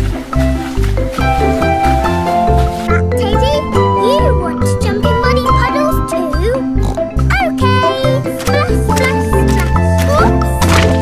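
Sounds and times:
upbeat cartoon music: 0.0s - 11.0s.

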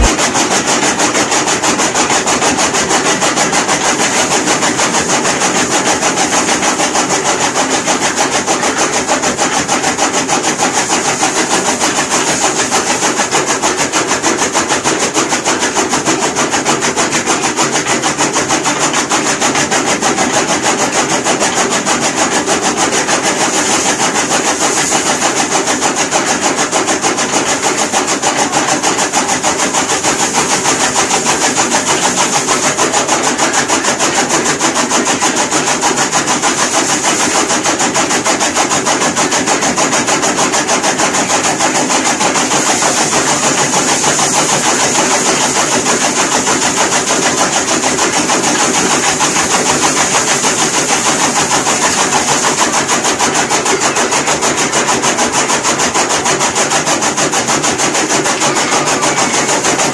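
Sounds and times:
electric chaff cutter chopping: 0.0s - 59.9s.

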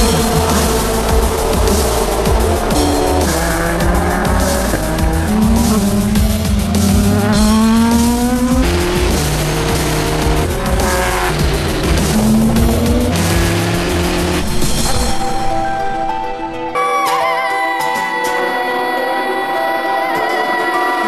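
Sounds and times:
race car engine revving: 0.0s - 15.2s
music with bass line: 0.0s - 16.9s.

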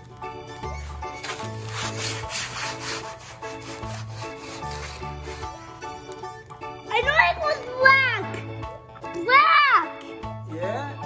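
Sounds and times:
plucked melody music: 0.0s - 10.5s
hands scrubbing wet paint on paper: 0.6s - 5.6s.

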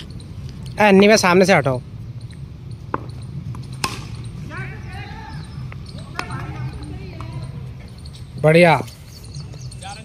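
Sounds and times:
distant voices calling out: 0.0s - 10.0s
cricket bat striking ball: 2.9s - 4.3s.

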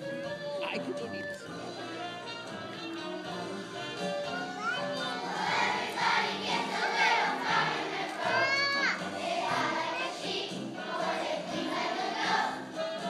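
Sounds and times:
music: 0.0s - 13.0s
children's choir singing: 3.2s - 13.0s.

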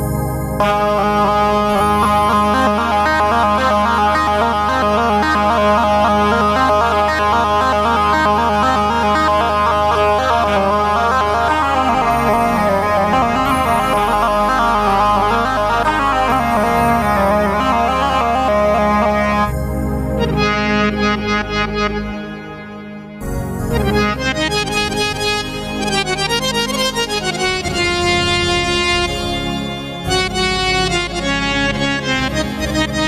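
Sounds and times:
low synth bass: 0.0s - 33.0s
synthesizer melody: 0.0s - 33.0s.

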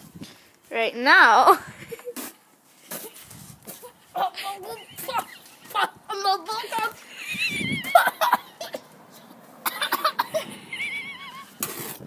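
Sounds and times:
girl laughing: 3.8s - 8.8s, 9.7s - 11.6s
girl coughing and spluttering: 7.9s - 8.9s, 9.6s - 10.5s.

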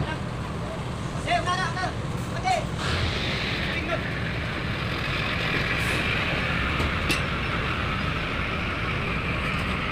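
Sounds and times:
low engine rumble: 0.0s - 9.9s
hiss: 2.8s - 4.5s.

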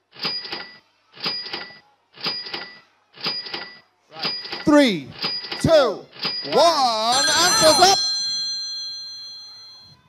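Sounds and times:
bell-like chime: 7.1s - 10.0s.

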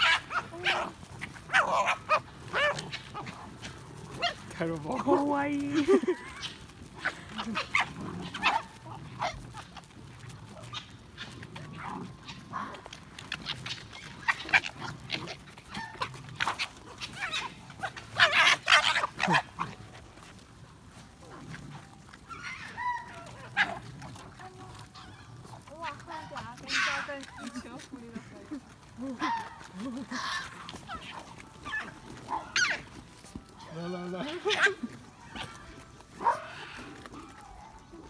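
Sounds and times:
foxes squabbling: 0.0s - 38.0s.

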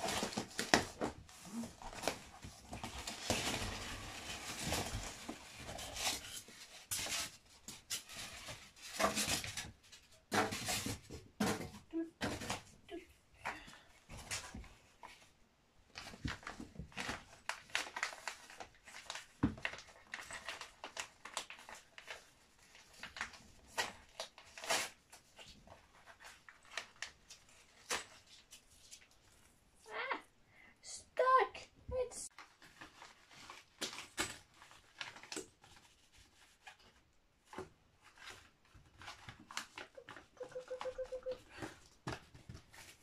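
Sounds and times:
paper and cardboard rustling: 0.0s - 12.8s, 13.5s - 29.5s, 32.3s - 43.0s.

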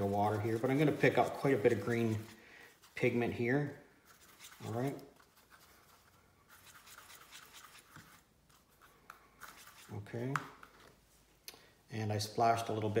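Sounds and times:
paintbrush scratching in palette: 0.0s - 3.2s, 4.0s - 10.0s.

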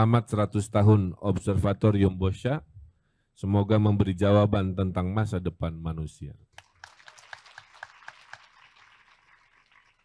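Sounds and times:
faint audience applause: 6.6s - 10.0s.

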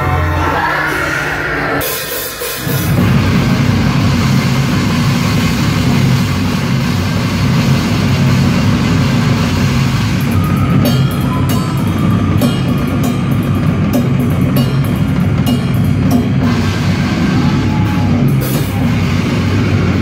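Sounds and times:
heavy metal band playing: 0.0s - 20.0s
drum and cymbal hits: 1.8s - 20.0s.

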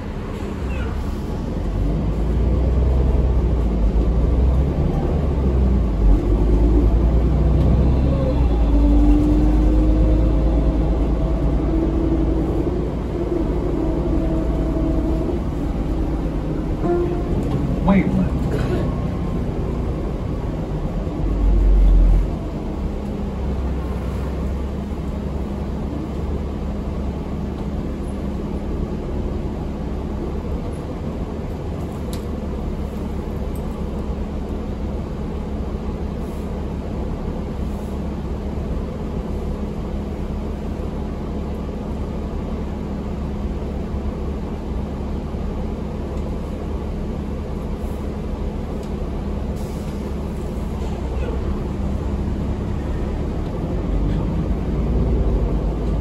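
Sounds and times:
bus engine rumble inside cabin: 0.0s - 56.0s.

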